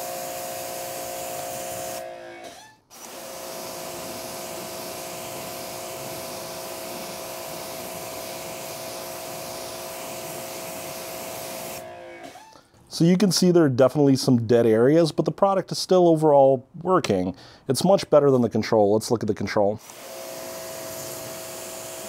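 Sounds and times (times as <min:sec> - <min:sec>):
pressure washer motor whine: 0:00.0 - 0:12.4, 0:19.8 - 0:22.0
water jet hissing: 0:03.0 - 0:11.8.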